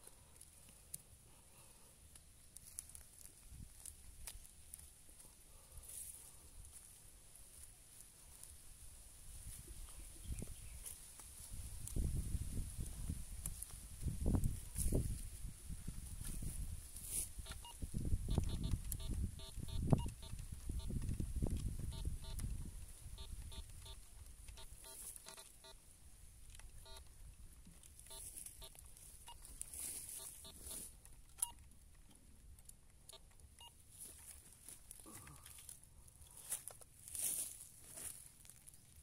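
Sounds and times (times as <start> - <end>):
metal detector beeps: 17.1 - 25.8, 26.7 - 27.1, 28.0 - 31.6, 33.1 - 33.8.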